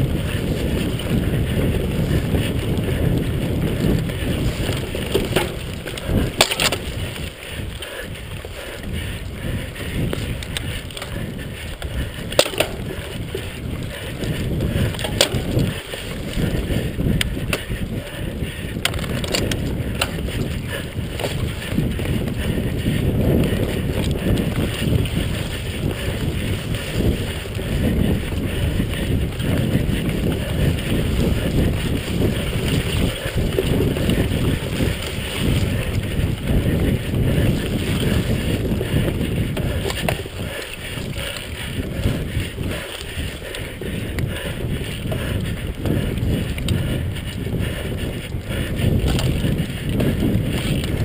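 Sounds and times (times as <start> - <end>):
bike knocking on bumps: 0.0 - 47.0, 47.6 - 51.0
mountain bike rattling: 0.0 - 51.0
wind buffeting microphone: 0.0 - 51.0.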